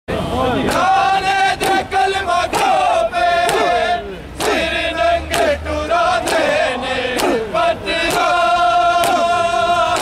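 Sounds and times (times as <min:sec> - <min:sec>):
men chanting in unison: 0:00.1 - 0:10.0.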